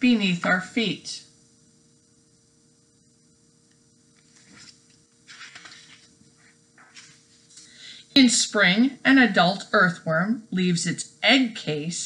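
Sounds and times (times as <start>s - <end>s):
book pages rustling: 4.2s - 7.6s.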